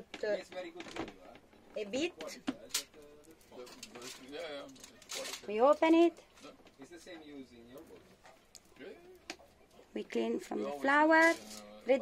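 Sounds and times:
aluminium foil crinkling: 0.2s - 12.0s.

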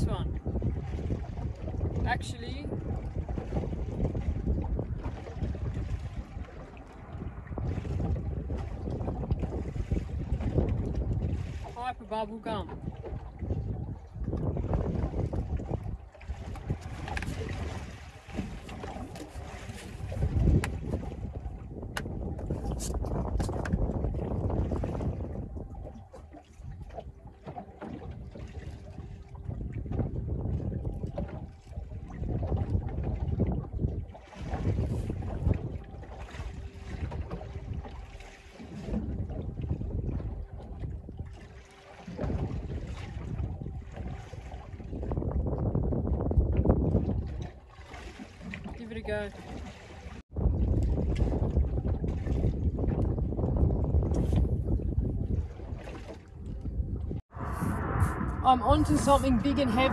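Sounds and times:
sea washing around boat: 0.0s - 59.9s
wind buffeting microphone: 0.0s - 59.9s.

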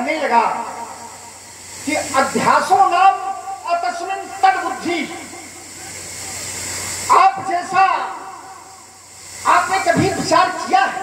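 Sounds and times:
amplifier hiss and hum: 0.0s - 11.0s.

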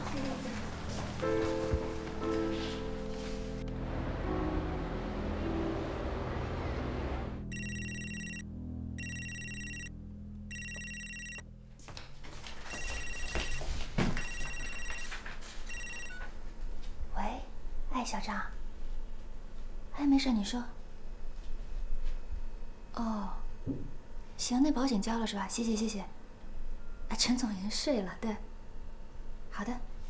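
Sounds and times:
background music: 0.0s - 11.6s
mobile phone ringtone beeping: 7.5s - 8.4s, 9.0s - 9.9s, 10.5s - 11.4s, 12.7s - 15.1s, 15.7s - 16.3s.

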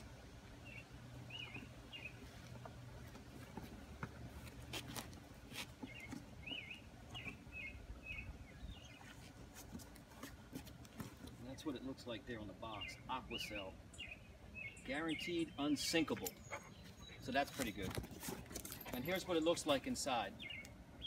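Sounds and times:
steady low hum: 0.0s - 21.0s
small birds chirping: 0.4s - 21.0s.

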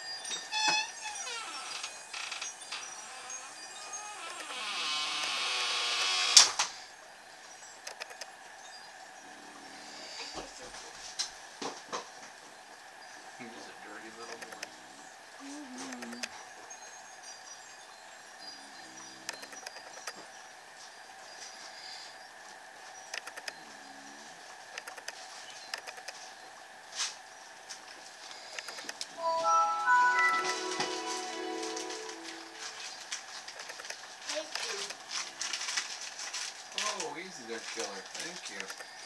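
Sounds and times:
background music: 29.2s - 32.9s.

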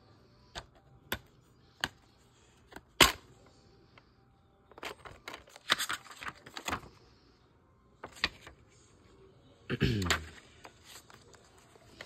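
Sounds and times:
paper insert rustling: 4.7s - 7.0s, 10.2s - 12.0s.

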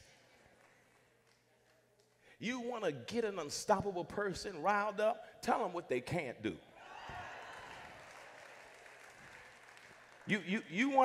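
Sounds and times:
faint applause: 6.8s - 10.8s.

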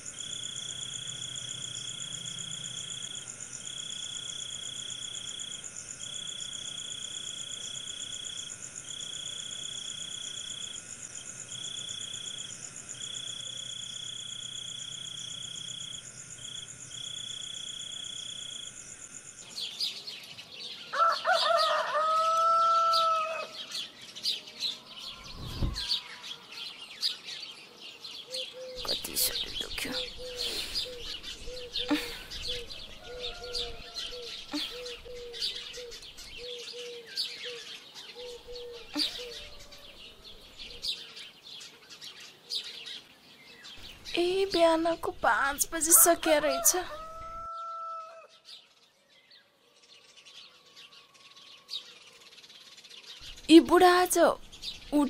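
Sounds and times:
insects trilling: 0.0s - 27.3s, 28.2s - 48.3s, 50.4s - 55.0s
birds chirping: 0.0s - 55.0s
rooster crowing: 20.9s - 23.7s, 32.6s - 35.4s, 45.8s - 48.4s.

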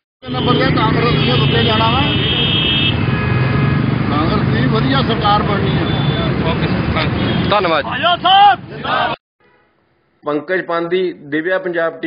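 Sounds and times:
outdoor crowd noise: 0.2s - 9.2s
man speaking: 4.2s - 9.2s.

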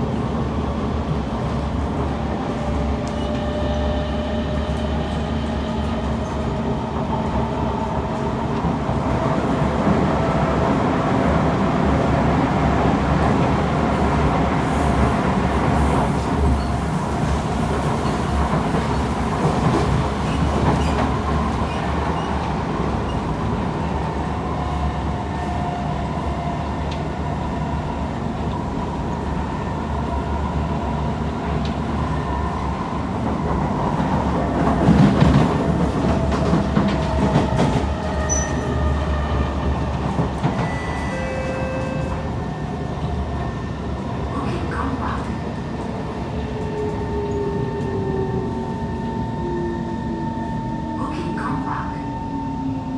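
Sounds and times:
train wheels rumbling on rail: 0.0s - 52.9s
train clatter: 17.7s - 23.2s, 33.2s - 38.9s.

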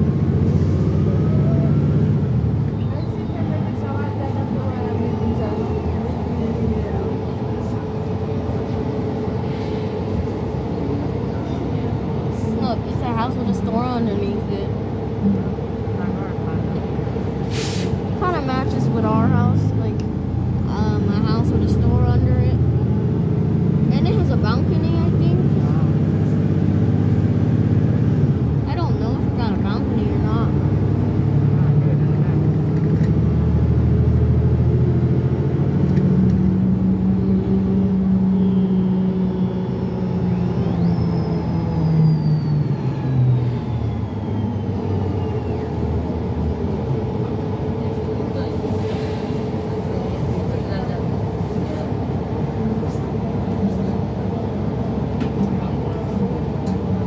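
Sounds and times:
bus engine drone accelerating: 0.0s - 57.0s
passengers talking: 0.0s - 57.0s.

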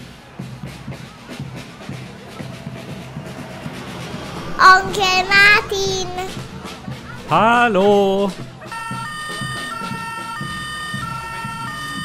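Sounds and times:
toy police car two-tone siren: 8.7s - 12.0s.

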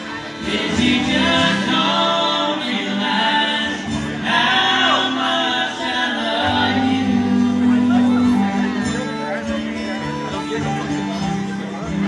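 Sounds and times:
acoustic guitar: 0.0s - 12.0s
man and woman singing: 0.1s - 8.8s.

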